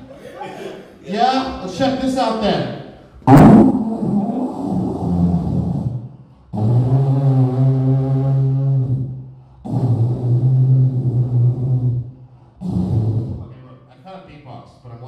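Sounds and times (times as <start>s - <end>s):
man humming low notes into microphone: 3.7s - 6.0s, 6.6s - 13.5s.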